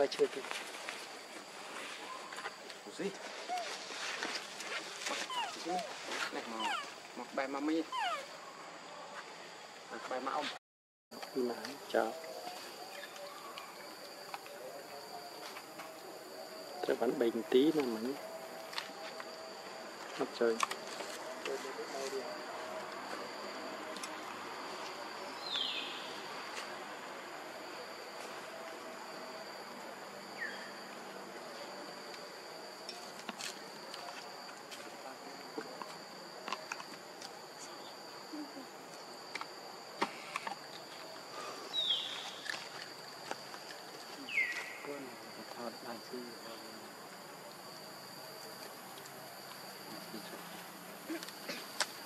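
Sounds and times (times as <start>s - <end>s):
insects droning: 0.0s - 52.0s
macaques grunting: 5.2s - 7.0s, 7.8s - 8.4s
macaques squealing: 5.2s - 7.0s, 7.8s - 8.4s.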